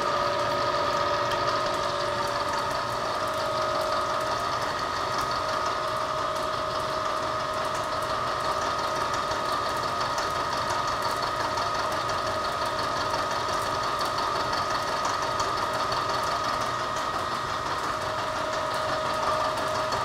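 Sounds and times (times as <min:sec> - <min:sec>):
milling machine whine: 0:00.0 - 0:20.0.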